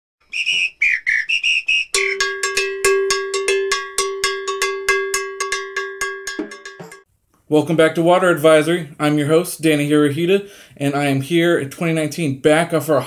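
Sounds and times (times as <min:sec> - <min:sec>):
whistled tune: 0:00.2 - 0:02.6
ringing bell-like strikes: 0:02.0 - 0:07.1.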